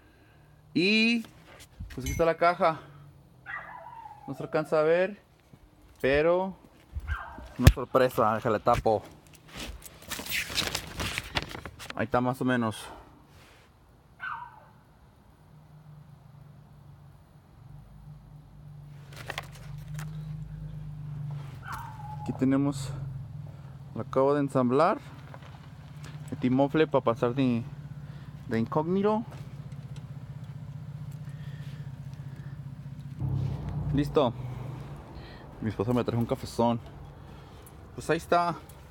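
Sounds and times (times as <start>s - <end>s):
diesel engine idling: 19.8s - 38.0s.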